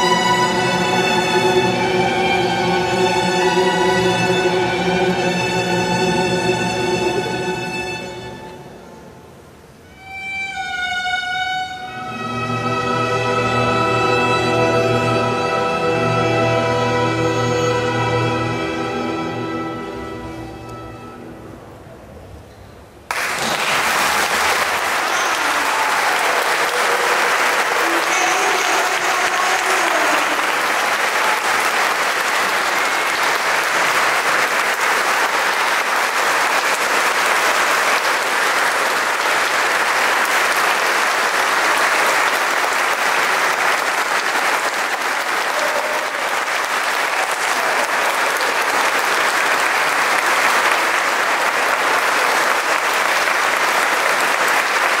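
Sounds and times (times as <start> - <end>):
audience applauding: 23.1 - 55.0
raised voices in crowd: 24.8 - 30.5, 45.4 - 46.4.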